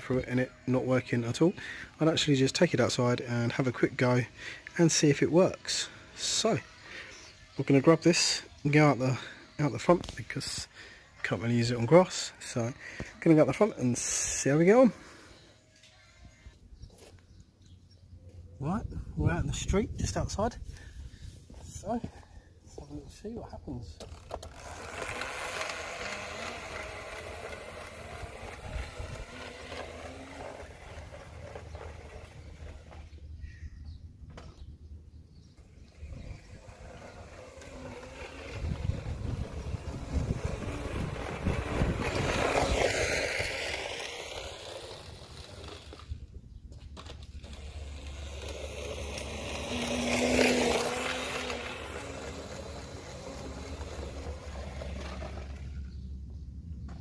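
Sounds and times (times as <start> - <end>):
electric scooter passing: 0.0 - 16.6, 24.0 - 33.6, 35.4 - 56.4.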